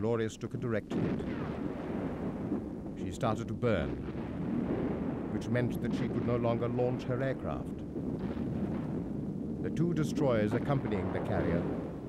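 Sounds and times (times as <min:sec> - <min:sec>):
distant explosions rumbling: 0:00.7 - 0:12.0
heavy gunfire: 0:00.9 - 0:12.0.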